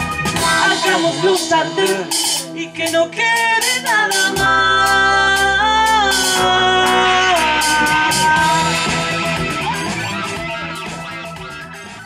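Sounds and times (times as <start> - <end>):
person singing: 0.0 - 11.3
live band playing: 0.0 - 12.0.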